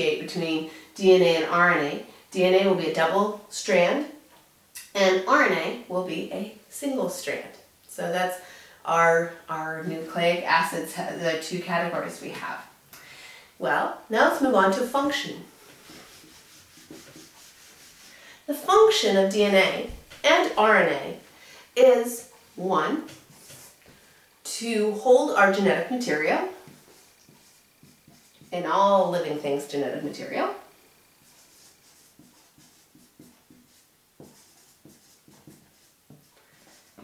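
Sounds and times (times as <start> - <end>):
eraser rubbing on whiteboard: 14.6 - 20.7, 22.2 - 23.9, 25.0 - 30.4, 31.0 - 37.0
marker pen writing on board: 15.7 - 18.1, 26.6 - 28.6, 31.2 - 37.0.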